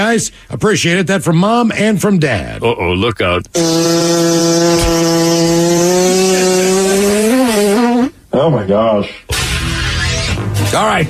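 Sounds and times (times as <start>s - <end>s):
long comedy fart noise: 3.6s - 8.2s.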